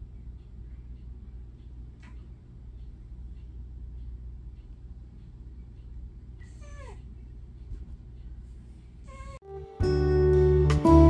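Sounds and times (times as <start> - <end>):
cat meowing: 6.4 - 7.0.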